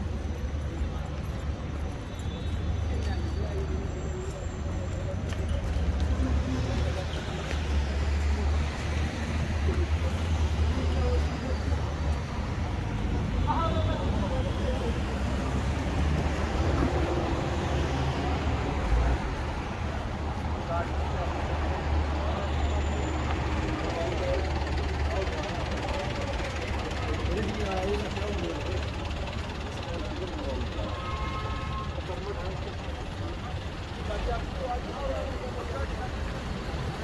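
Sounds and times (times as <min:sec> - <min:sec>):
vehicle engine rumble: 0:00.0 - 0:37.0.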